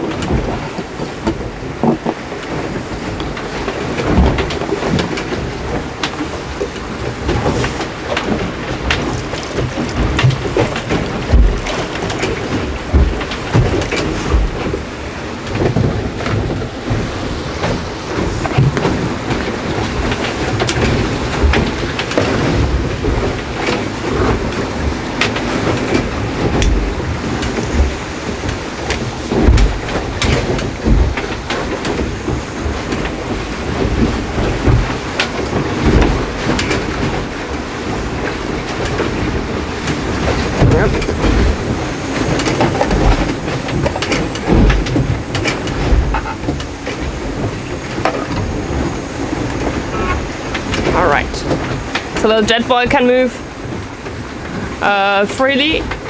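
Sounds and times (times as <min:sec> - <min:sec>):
rushing and rumbling noise: 0:00.0 - 0:56.0.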